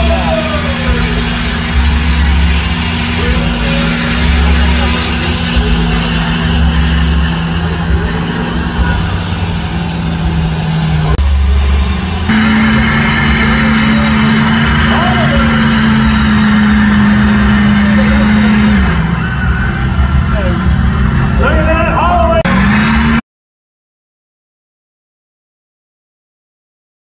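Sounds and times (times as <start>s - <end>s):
crowd cheering: 0.0s - 23.2s
truck engine revving: 0.0s - 23.2s.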